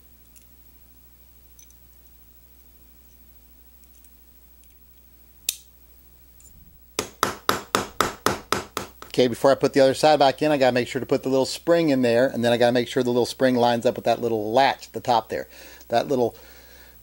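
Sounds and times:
small metal parts handled: 1.5s - 1.8s
small hammer tapping metal: 7.0s - 9.2s.

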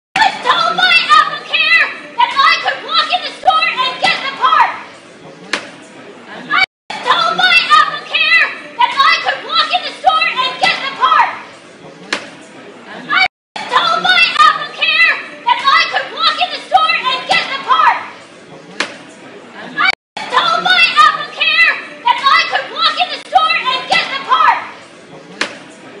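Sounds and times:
woman shouting: 0.2s - 4.8s, 6.5s - 11.4s, 13.1s - 18.1s, 19.8s - 24.7s
crowd chatter: 0.2s - 26.0s.

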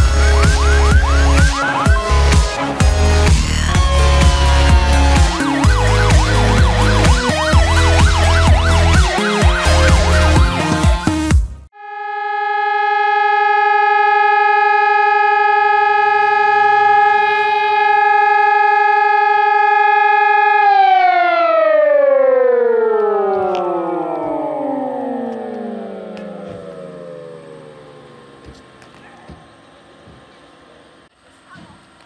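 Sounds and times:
fire station siren: 0.0s - 30.2s.

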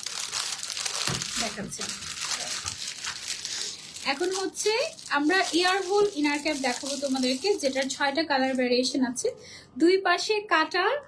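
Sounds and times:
plastic bag crinkling: 0.0s - 8.8s.

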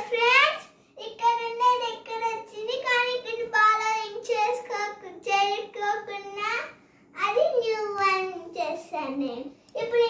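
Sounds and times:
girl speaking in sing-song voice: 0.0s - 10.0s.

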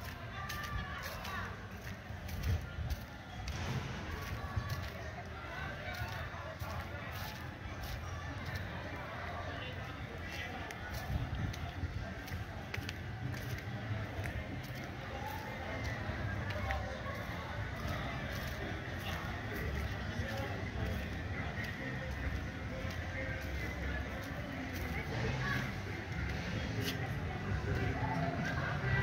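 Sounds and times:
distant voices: 0.0s - 29.0s
light footsteps: 0.0s - 29.0s
wind rumble on microphone: 11.0s - 12.6s.

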